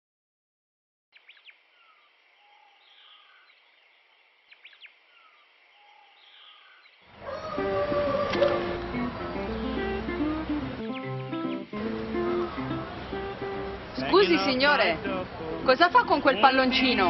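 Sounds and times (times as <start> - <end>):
faint birdsong: 1.1 - 17.0
guitar music: 7.5 - 17.0.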